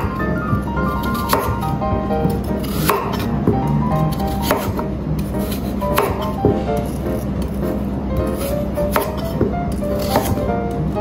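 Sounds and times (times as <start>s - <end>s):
background music: 0.0s - 11.0s
knife cutting onto wooden board: 1.0s - 1.6s, 2.2s - 3.3s, 4.1s - 7.0s.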